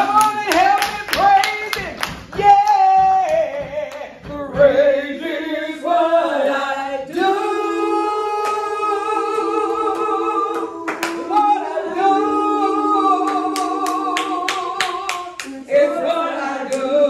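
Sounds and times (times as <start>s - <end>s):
hand claps: 0.0s - 4.3s, 9.7s - 11.5s, 13.2s - 15.6s.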